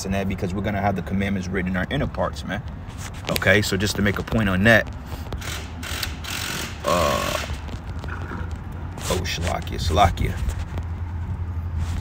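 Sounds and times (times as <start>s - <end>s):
steady low hum: 0.0s - 12.0s
phone handling clicks and rustling: 7.5s - 9.8s.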